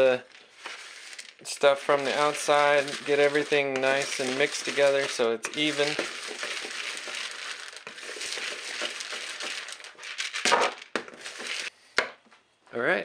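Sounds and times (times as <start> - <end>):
spoon stirring kibble in bowl: 0.0 - 11.7.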